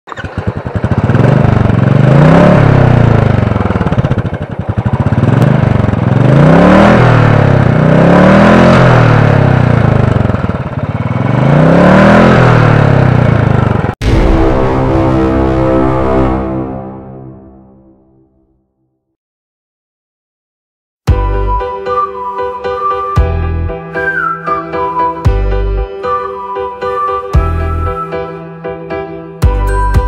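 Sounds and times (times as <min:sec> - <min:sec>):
motorcycle engine revving: 0:00.1 - 0:17.4.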